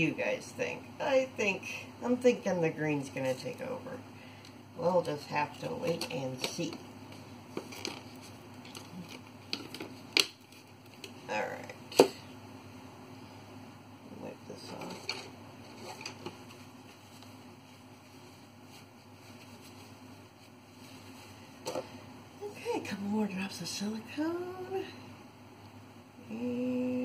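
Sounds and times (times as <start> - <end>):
low room noise: 0.0 - 27.0.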